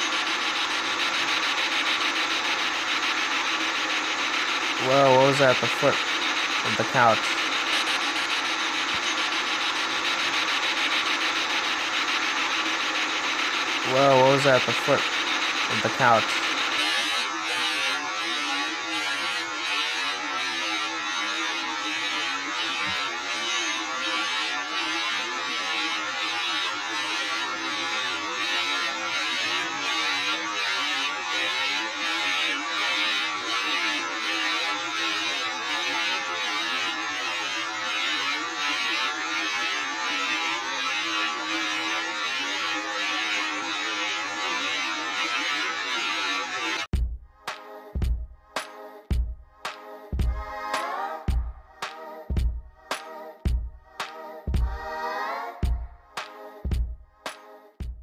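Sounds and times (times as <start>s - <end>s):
buzzing static with pulse: 0.0s - 48.2s, 55.6s - 58.0s.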